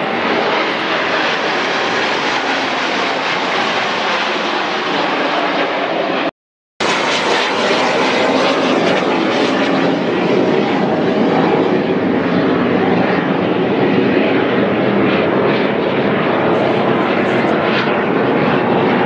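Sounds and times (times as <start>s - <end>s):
airplanes flying overhead: 0.0s - 19.0s.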